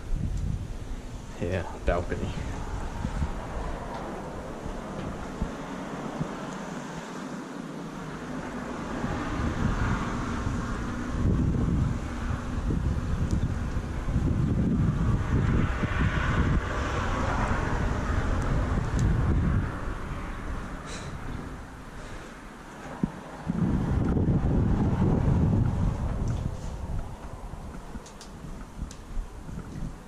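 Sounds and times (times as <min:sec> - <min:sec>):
cars passing on road: 0:00.0 - 0:30.0
wind buffeting microphone: 0:00.0 - 0:30.0.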